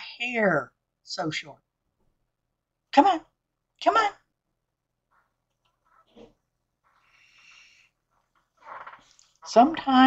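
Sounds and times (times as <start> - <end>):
woman breathing: 6.8 - 8.2.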